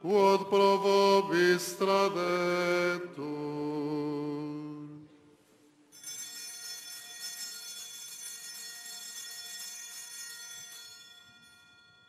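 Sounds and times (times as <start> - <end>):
altar bells ringing: 5.9 - 12.0.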